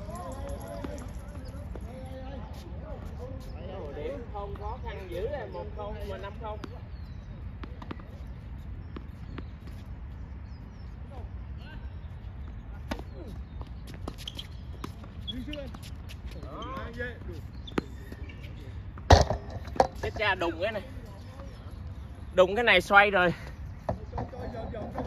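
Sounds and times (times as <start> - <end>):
tennis balls struck and bouncing: 0.0 - 1.9, 6.5 - 10.0, 12.8 - 20.2.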